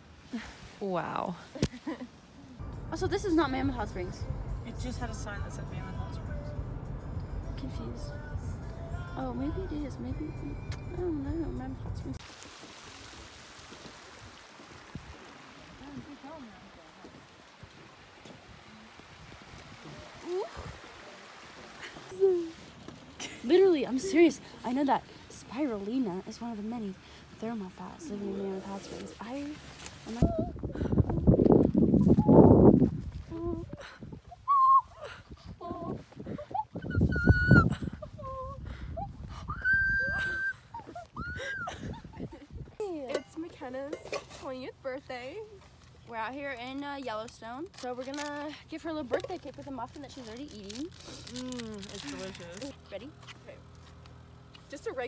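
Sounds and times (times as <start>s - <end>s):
water rushing over rocks: 12.2s - 22.9s.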